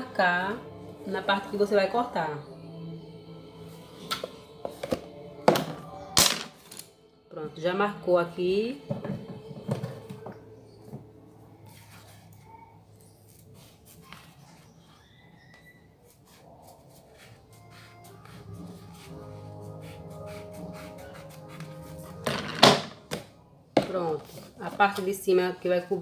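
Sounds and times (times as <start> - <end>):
soft background music: 0.0 - 26.0.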